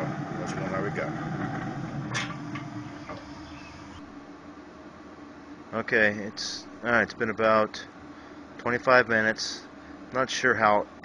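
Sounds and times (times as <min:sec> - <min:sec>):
grill fan humming: 0:00.0 - 0:11.0.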